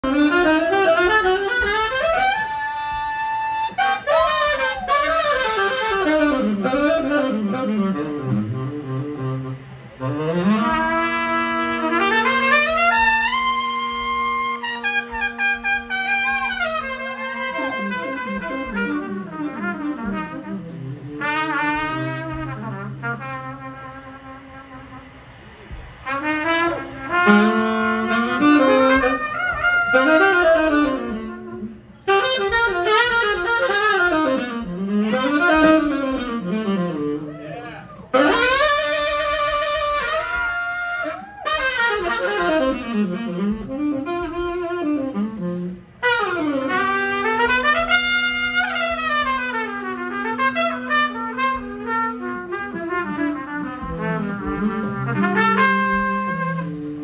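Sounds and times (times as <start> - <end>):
saxophone and trumpet horn line: 0.0 - 57.0.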